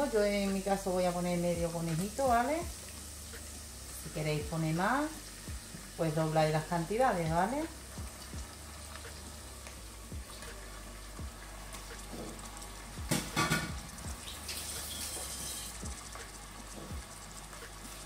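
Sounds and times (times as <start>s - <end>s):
meat sizzling in oil: 0.0s - 18.0s.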